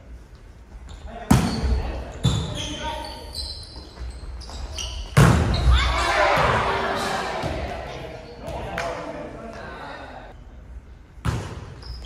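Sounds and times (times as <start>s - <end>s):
volleyball hits in gym hall: 1.1s - 2.8s, 3.8s - 10.4s, 11.2s - 12.0s
players calling out: 5.5s - 10.3s.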